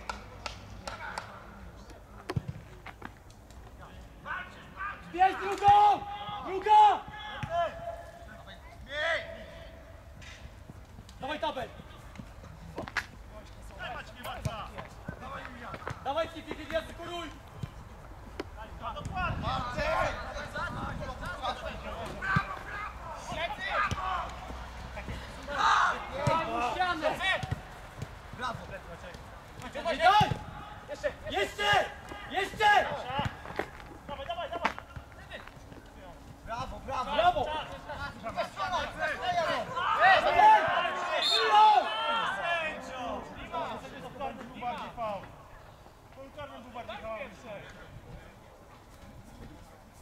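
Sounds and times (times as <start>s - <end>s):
players calling and shouting: 0.0s - 50.0s.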